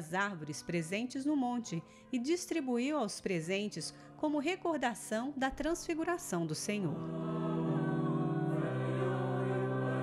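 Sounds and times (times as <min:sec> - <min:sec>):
choir singing held chords: 0:06.9 - 0:10.0.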